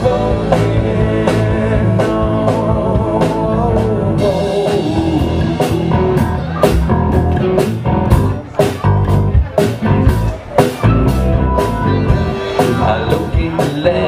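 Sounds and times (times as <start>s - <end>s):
live rock band: 0.0s - 14.0s.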